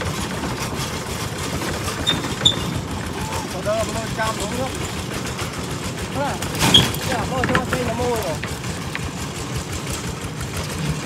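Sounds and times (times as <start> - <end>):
diesel tractor engine running: 0.0 - 11.0.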